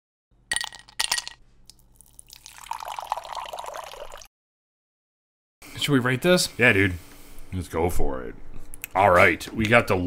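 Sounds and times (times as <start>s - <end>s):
whiskey pouring into a glass: 0.5s - 4.3s.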